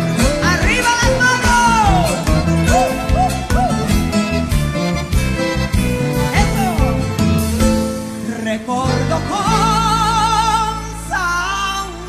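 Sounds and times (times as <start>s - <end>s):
guitar accompaniment: 0.0s - 12.0s
woman singing: 0.2s - 3.8s, 8.3s - 12.0s.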